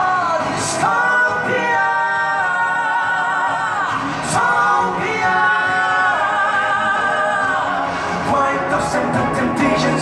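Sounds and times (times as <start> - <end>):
backing track music: 0.0 - 10.0
male vocal group singing in harmony: 0.0 - 10.0.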